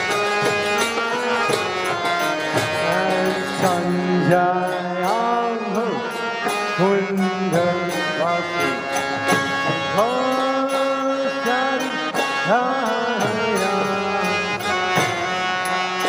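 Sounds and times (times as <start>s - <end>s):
chanted devotional singing: 0.0s - 16.0s
percussion strikes: 0.0s - 16.0s.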